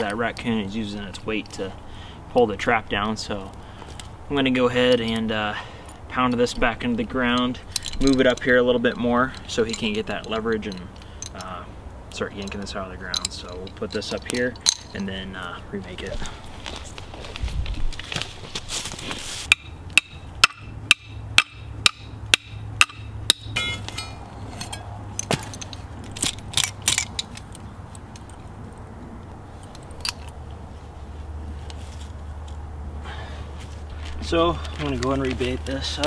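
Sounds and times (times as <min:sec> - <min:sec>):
hammer strikes on metal trap: 0:19.5 - 0:25.6.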